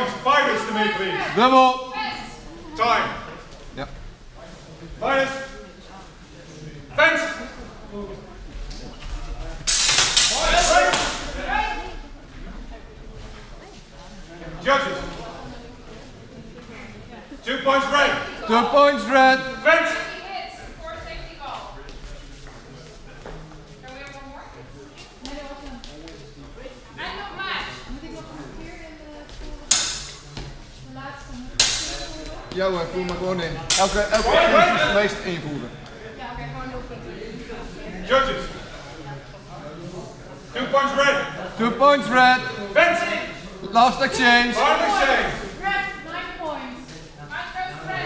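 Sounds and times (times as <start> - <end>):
swords clashing: 9.7 - 11.2, 29.7 - 30.2, 31.6 - 32.1, 33.7 - 34.3
people shouting: 10.2 - 11.8.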